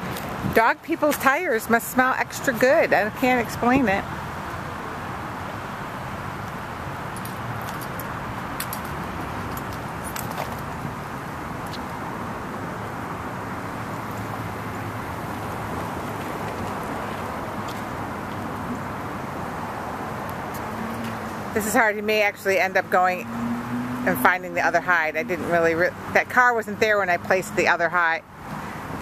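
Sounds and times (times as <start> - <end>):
traffic and machinery hum: 0.0 - 29.0.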